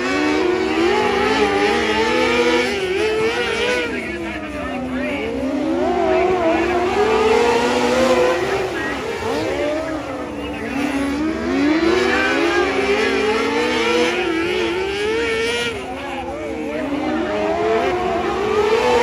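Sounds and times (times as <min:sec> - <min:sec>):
small race car engines: 0:00.0 - 0:19.0.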